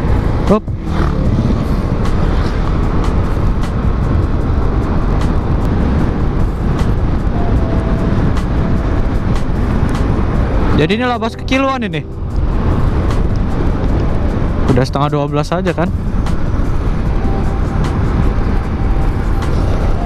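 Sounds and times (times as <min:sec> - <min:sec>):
wind rush on microphone: 0:00.0 - 0:20.0.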